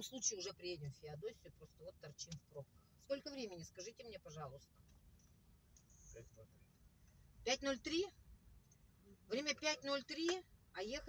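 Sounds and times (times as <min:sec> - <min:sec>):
faint car cabin hum: 0:00.0 - 0:11.0.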